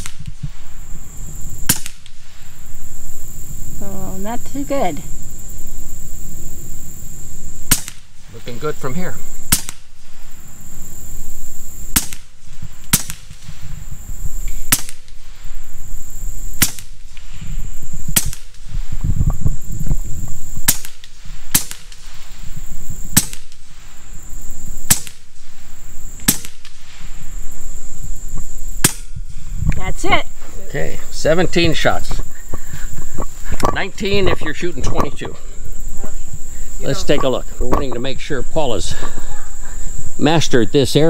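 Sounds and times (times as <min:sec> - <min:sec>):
air rifle shots cracking: 0:00.0 - 0:00.4, 0:01.6 - 0:02.3, 0:07.6 - 0:08.2, 0:09.4 - 0:10.2, 0:11.9 - 0:13.5, 0:14.6 - 0:15.3, 0:16.6 - 0:17.2, 0:18.1 - 0:18.7, 0:20.6 - 0:22.1, 0:23.1 - 0:23.7, 0:24.8 - 0:25.5, 0:26.2 - 0:26.8, 0:28.8 - 0:29.2.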